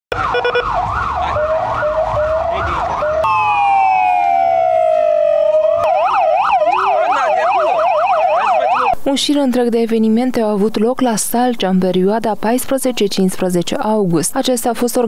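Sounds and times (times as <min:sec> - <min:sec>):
police siren: 0:00.1 - 0:09.0.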